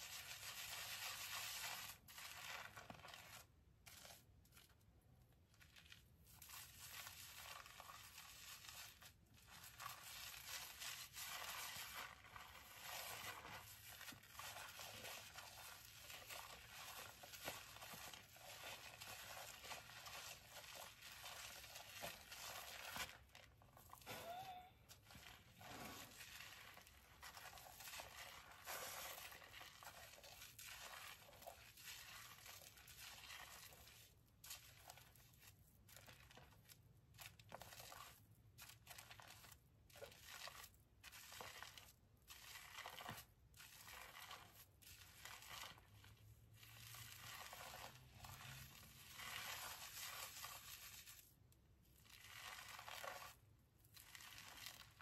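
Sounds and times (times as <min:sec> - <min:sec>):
foam squishing: 0:00.0 - 0:55.0
fingers scrubbing shampoo lather: 0:25.0 - 0:35.5.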